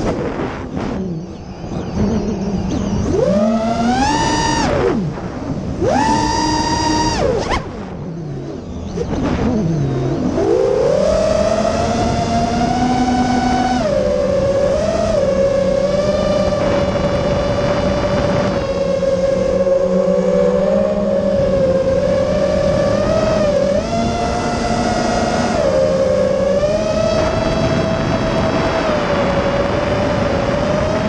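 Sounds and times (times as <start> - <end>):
quadcopter motors whining: 0.0 - 31.0.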